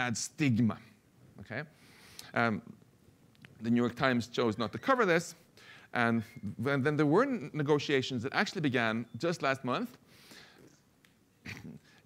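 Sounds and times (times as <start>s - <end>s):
man speaking: 0.0s - 2.8s, 3.6s - 10.0s.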